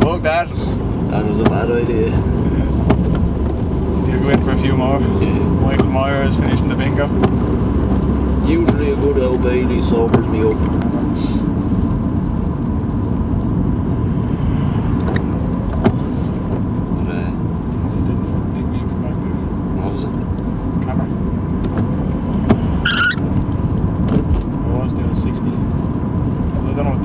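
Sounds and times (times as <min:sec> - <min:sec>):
car engine and road noise: 0:00.0 - 0:27.0.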